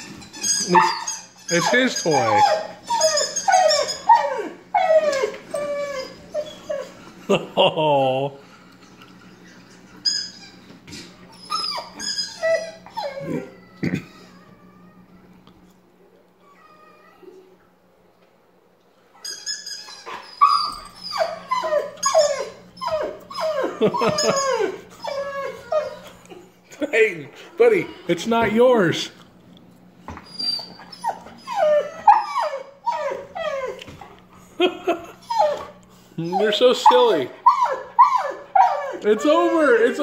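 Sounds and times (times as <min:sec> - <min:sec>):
dog howling: 0:00.6 - 0:07.0, 0:20.0 - 0:26.1, 0:30.6 - 0:33.9, 0:35.3 - 0:40.0.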